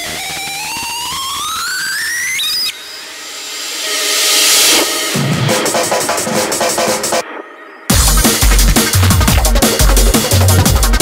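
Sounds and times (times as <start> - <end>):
synth tone rising in pitch: 0.0 - 5.6
noise sweep: 0.4 - 10.4.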